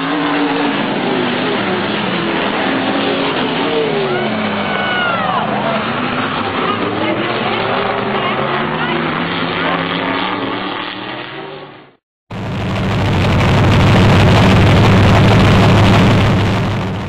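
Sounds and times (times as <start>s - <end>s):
race car engines: 0.0s - 12.0s
steady engine sound: 0.0s - 17.0s.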